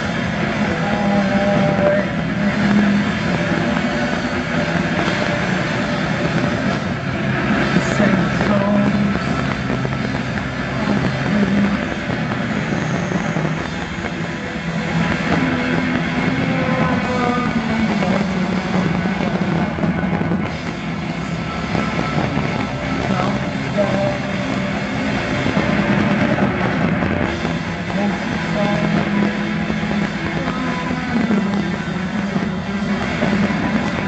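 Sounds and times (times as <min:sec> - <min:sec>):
drums: 0:00.0 - 0:34.0
electric guitar: 0:00.0 - 0:34.0.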